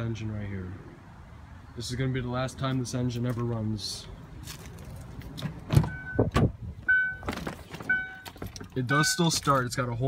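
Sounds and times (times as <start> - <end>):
car door clunks and knocks: 5.4 - 6.6
car warning chime beeping: 5.8 - 9.4.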